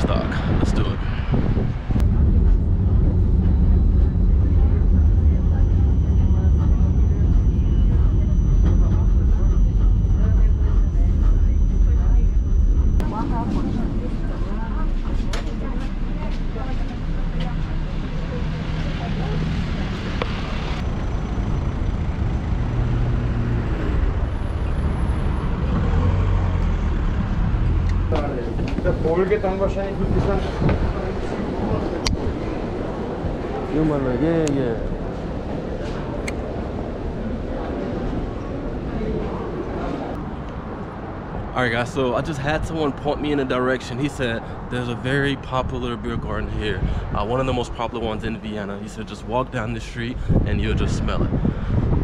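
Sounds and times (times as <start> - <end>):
city traffic: 0.0 - 52.0
tram low rumble: 0.0 - 52.0
people's voices: 1.9 - 22.2, 27.9 - 51.8
faint high whine: 2.0 - 14.8.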